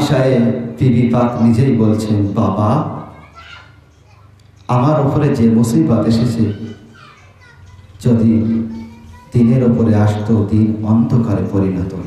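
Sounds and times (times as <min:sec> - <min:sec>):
man speaking into a microphone: 0:00.0 - 0:03.1, 0:04.7 - 0:06.7, 0:08.0 - 0:08.7, 0:09.3 - 0:12.0.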